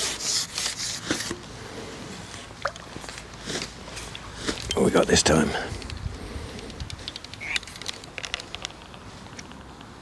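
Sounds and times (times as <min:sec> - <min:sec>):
fishing tackle clicks and taps: 0:05.8 - 0:09.9.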